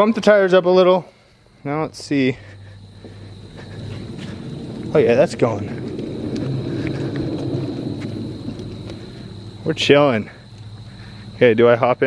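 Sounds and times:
caster wheels rolling over concrete: 0:02.9 - 0:12.0
faint ticks: 0:10.4 - 0:11.0.

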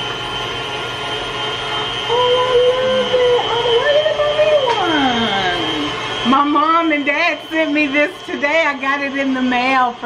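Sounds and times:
kitchen appliance whirring: 0:00.0 - 0:10.0.

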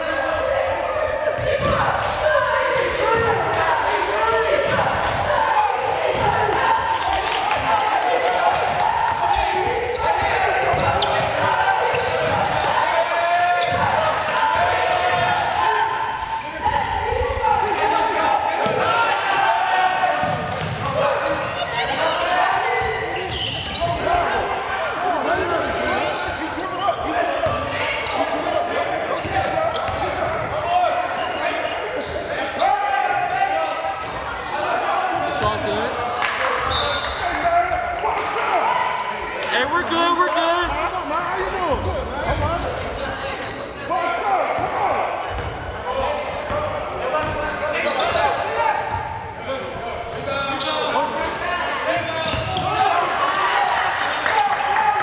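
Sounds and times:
people shouting: 0:00.0 - 0:26.5.

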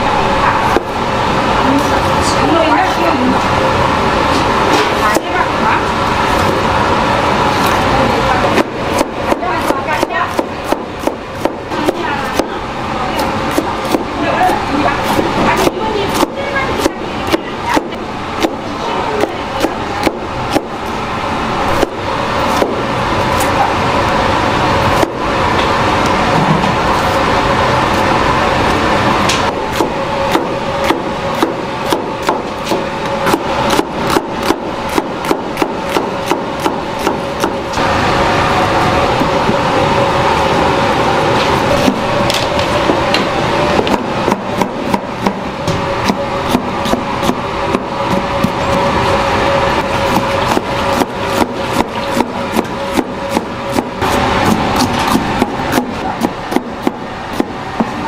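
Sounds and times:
knife chopping on plastic board: 0:08.6 - 0:12.5.

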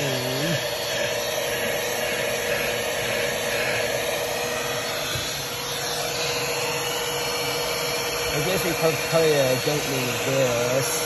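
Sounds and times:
handheld vacuum cleaner running: 0:00.0 - 0:11.0.

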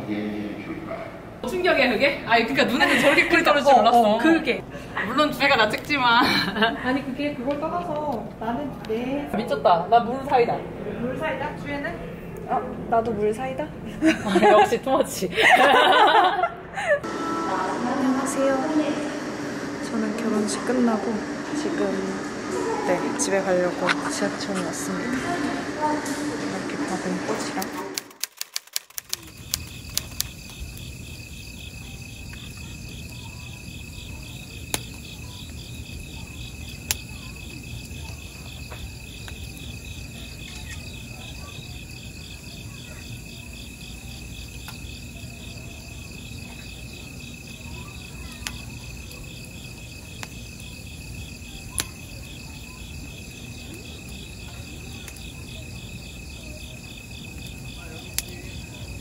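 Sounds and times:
wood fire popping: 0:27.5 - 0:59.0
run of sharp clicks: 0:27.6 - 0:30.6
night insects trilling: 0:28.9 - 0:59.0.

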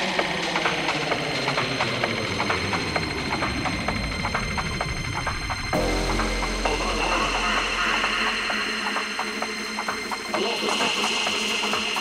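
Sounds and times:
rapid percussion ticks: 0:00.0 - 0:12.0
bass: 0:00.1 - 0:10.1.

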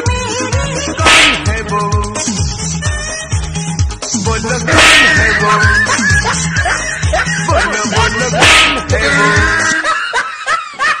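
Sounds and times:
music with bass beat: 0:00.1 - 0:09.8
high-pitched giggling laugh: 0:05.2 - 0:08.3.

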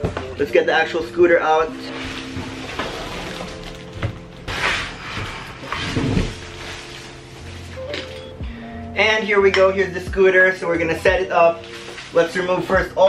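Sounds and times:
background music: 0:00.0 - 0:13.0
plastic wrapping rustling: 0:01.0 - 0:08.4, 0:11.0 - 0:13.0.

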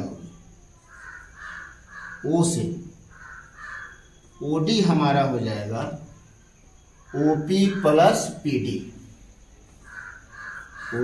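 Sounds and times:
bird calling: 0:00.0 - 0:09.1, 0:09.7 - 0:11.0.

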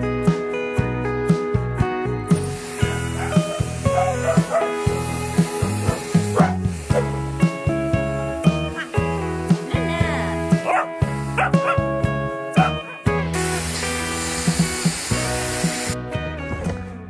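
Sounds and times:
background music: 0:00.0 - 0:17.0
hair styler blowing air: 0:02.3 - 0:11.4, 0:13.3 - 0:16.0
small dog barking: 0:03.2 - 0:04.7, 0:05.9 - 0:07.1, 0:10.6 - 0:11.8, 0:12.6 - 0:12.8.

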